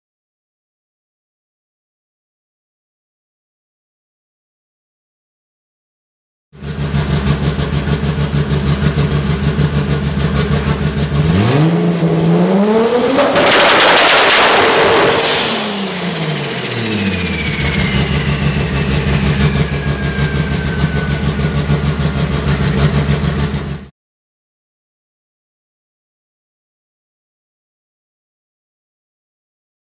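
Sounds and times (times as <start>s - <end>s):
lumpy car engine idling: 6.6s - 11.2s
engine revving: 6.6s - 23.9s
turbo whistle winding down: 11.4s - 23.1s.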